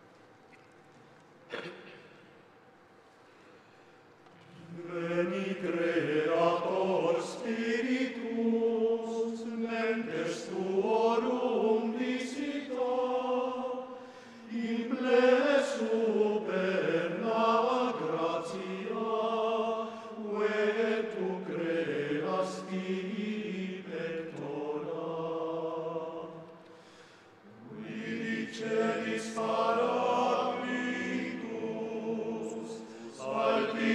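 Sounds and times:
choir singing: 4.6 - 26.6, 27.5 - 33.9.

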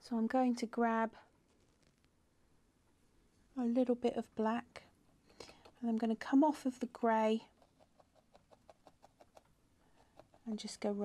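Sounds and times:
felting needle stabbing wool: 7.5 - 11.0.

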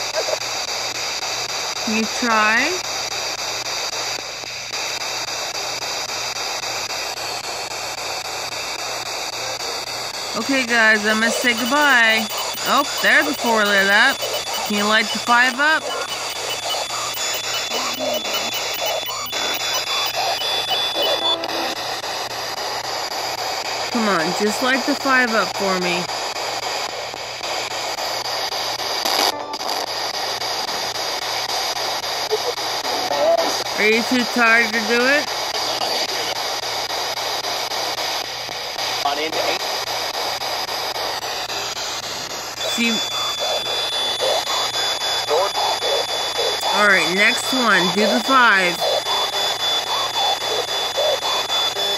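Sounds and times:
scraps of broadcast sound: 1.9 - 2.8, 6.4 - 51.9
radio static in rapid steps: 1.9 - 51.9
steady high whine: 3.4 - 32.9, 33.6 - 51.9.

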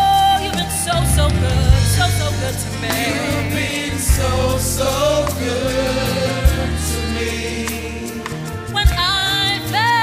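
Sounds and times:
steady bass: 0.0 - 9.9
gospel choir singing: 0.0 - 10.0.

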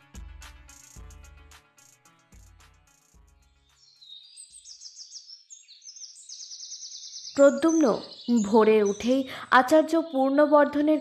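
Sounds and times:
birds chirping: 3.0 - 11.0.

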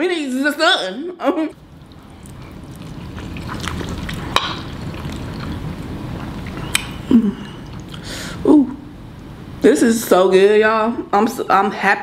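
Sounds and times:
wet chewing of noodles: 1.6 - 8.1.

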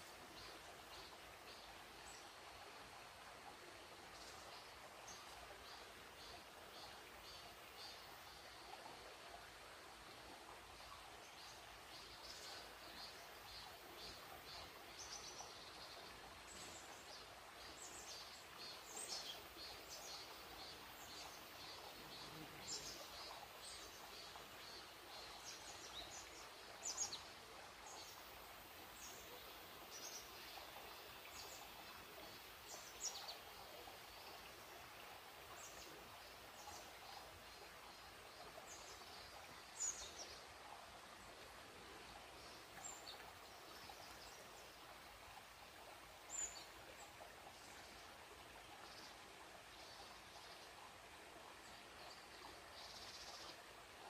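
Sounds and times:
faint forest ambience: 0.0 - 54.0.

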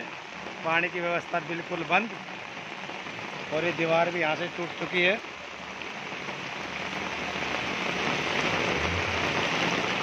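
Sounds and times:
heavy rain on standing water: 0.0 - 10.0.

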